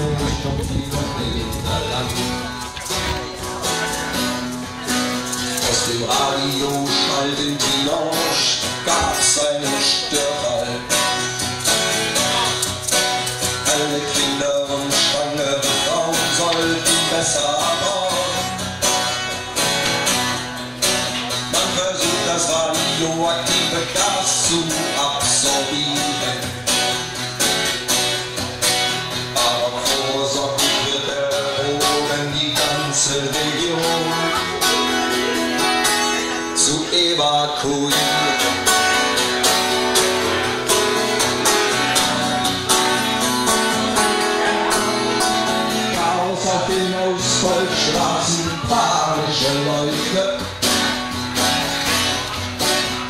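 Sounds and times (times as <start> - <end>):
acoustic guitar strumming: 0.0 - 53.0.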